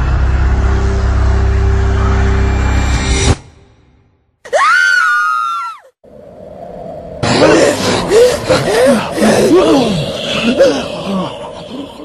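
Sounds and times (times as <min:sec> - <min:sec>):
woman screaming: 0:04.5 - 0:05.9.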